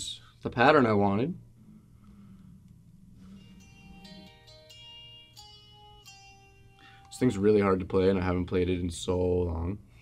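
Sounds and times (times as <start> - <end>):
acoustic guitar picked notes: 3.2 - 8.5.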